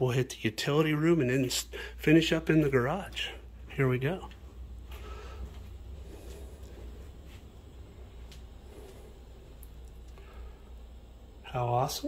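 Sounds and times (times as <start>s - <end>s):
steady low hum: 0.0s - 12.0s
faint footsteps: 2.2s - 10.2s.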